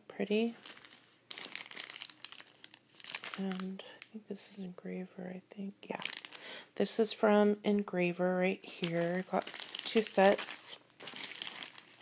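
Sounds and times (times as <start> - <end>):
plastic packaging crinkling: 0.3 - 4.1, 5.9 - 6.5, 8.7 - 12.0.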